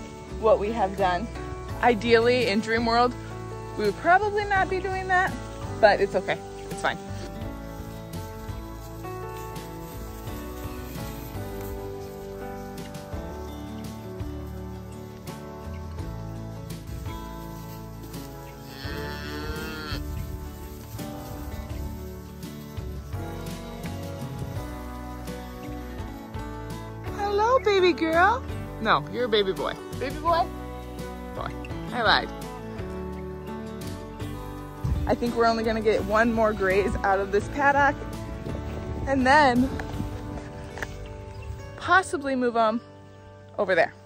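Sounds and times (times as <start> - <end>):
background music: 0.0 - 44.0
cow mooing: 18.6 - 20.2.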